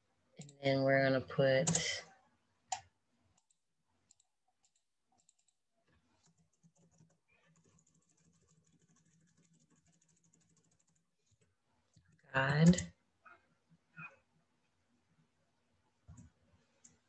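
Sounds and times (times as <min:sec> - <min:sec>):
mouse and keyboard clicks: 0:01.6 - 0:02.0.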